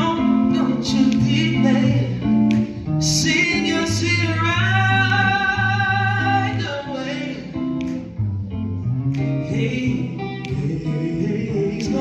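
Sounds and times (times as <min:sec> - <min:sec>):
electric guitar: 0:00.0 - 0:12.0.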